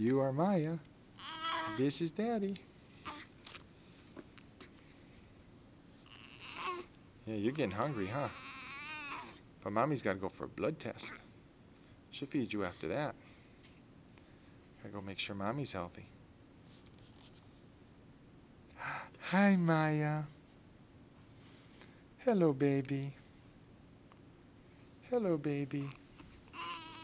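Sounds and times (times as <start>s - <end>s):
soft scratchy rustles: 16.6s - 17.7s.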